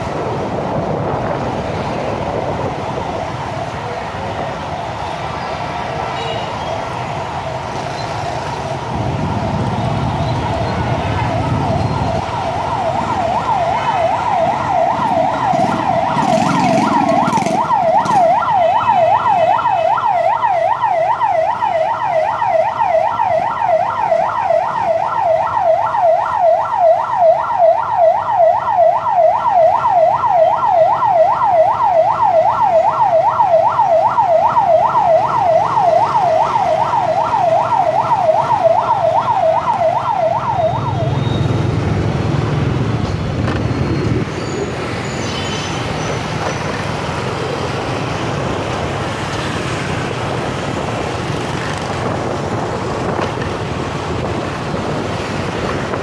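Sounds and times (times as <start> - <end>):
motorbike traffic: 0.0 - 56.0
ambulance siren yelping: 6.8 - 41.8.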